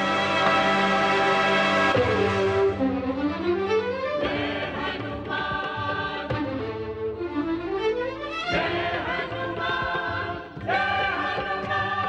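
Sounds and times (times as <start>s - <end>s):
choir singing long notes: 0.0s - 2.9s, 4.1s - 6.8s, 8.5s - 12.0s
instrumental accompaniment: 0.0s - 12.0s
drum strikes: 0.3s - 2.9s.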